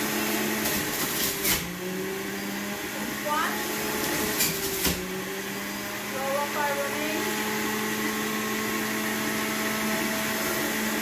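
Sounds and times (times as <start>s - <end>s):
juicer motor whirring: 0.0s - 11.0s.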